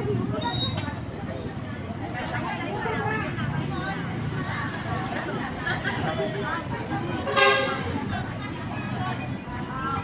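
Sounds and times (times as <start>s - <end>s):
chatter of voices: 0.0s - 10.0s
vehicle horn honk: 7.3s - 7.8s.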